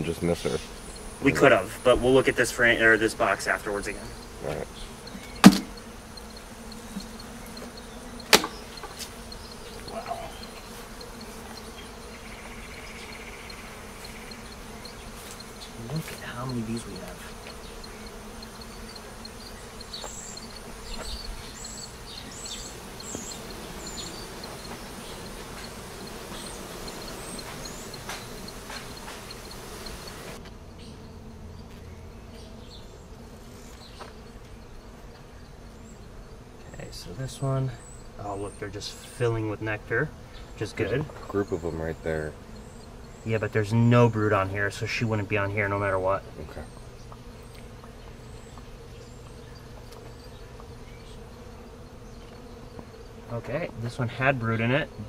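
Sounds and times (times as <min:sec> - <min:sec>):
honeybees buzzing: 0:00.0 - 0:55.0
sharp knock: 0:05.4 - 0:05.8, 0:08.3 - 0:08.6.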